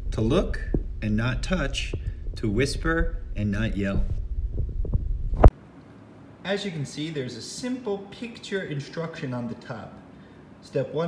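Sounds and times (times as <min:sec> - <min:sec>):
low thumping rumble: 0:00.0 - 0:05.5.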